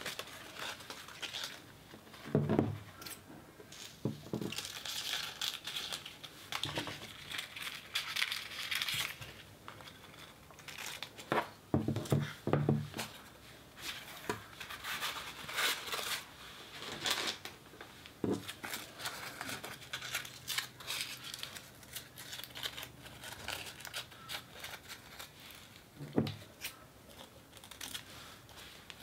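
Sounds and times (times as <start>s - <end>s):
paper crinkling and rustling: 0.0s - 29.0s.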